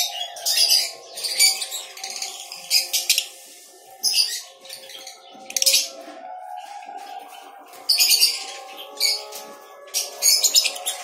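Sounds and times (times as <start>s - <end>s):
lovebirds chirping: 0.0s - 11.0s.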